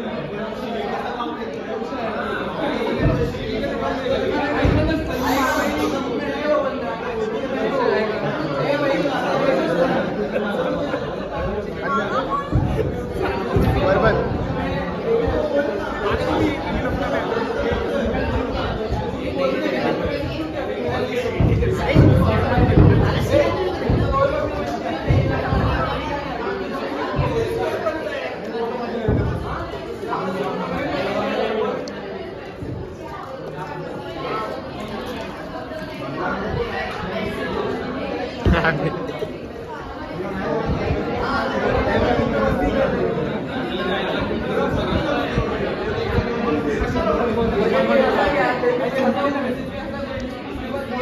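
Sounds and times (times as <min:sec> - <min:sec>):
young men chattering: 0:00.0 - 0:51.0.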